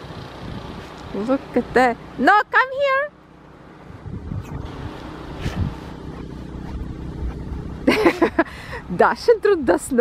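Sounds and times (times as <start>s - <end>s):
wind buffeting microphone: 0.0s - 2.0s, 3.7s - 10.0s.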